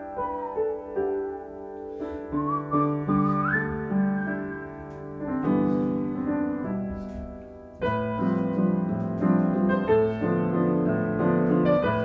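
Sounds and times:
upright piano chords: 0:00.0 - 0:12.0
person whistling melody: 0:02.0 - 0:05.0.

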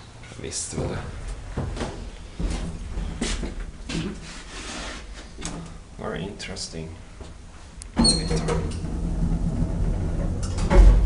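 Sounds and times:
elevator mechanical hum: 0:00.0 - 0:11.0.

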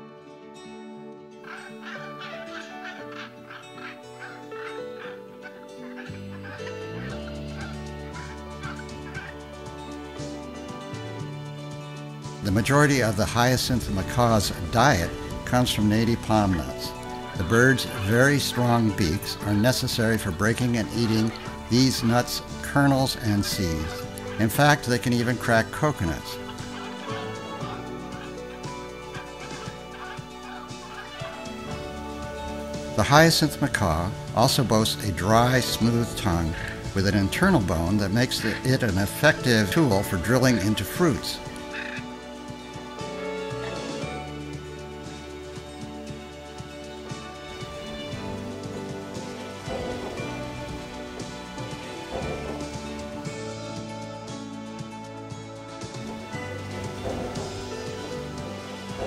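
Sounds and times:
background music: 0:00.0 - 0:59.0
harsh bird calls: 0:01.4 - 0:45.8, 0:55.9 - 0:59.0.

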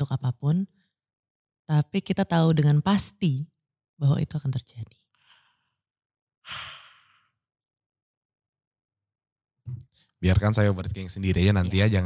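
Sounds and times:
faint breath: 0:05.2 - 0:05.8, 0:06.5 - 0:07.4
person sighing: 0:06.5 - 0:07.2.

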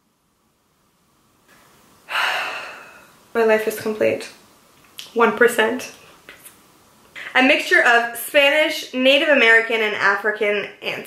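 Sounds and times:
woman gasping: 0:02.1 - 0:03.2.

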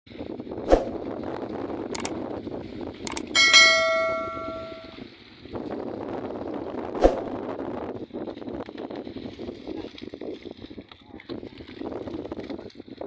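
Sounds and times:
wind: 0:00.1 - 0:13.0
mouse clicks: 0:03.1 - 0:03.3
bell ding: 0:03.1 - 0:05.0.

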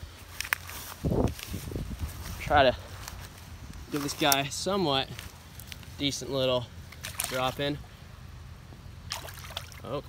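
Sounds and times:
steady low rumble: 0:00.0 - 0:09.6
fish splashing in shallow water: 0:06.9 - 0:07.7, 0:09.0 - 0:09.9.

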